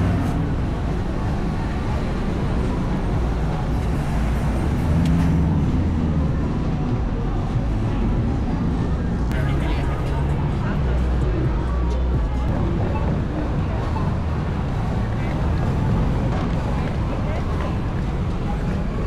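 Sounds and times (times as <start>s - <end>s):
car and motorbike traffic: 0.0s - 19.0s
chatter of passers-by: 0.0s - 19.0s.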